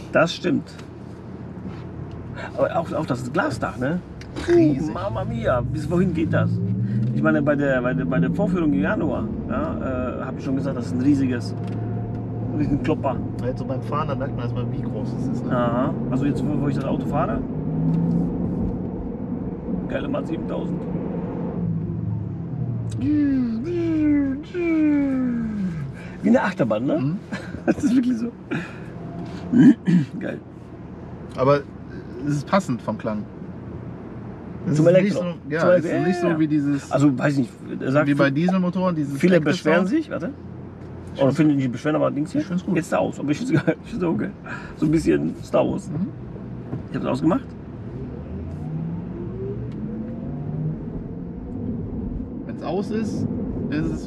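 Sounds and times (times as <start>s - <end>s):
road and tyre rumble: 0.0s - 54.0s.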